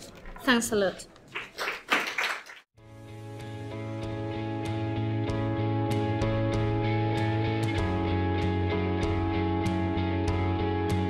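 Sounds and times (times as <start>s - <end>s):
audience applause: 1.3s - 2.7s
music with held notes: 3.0s - 11.0s.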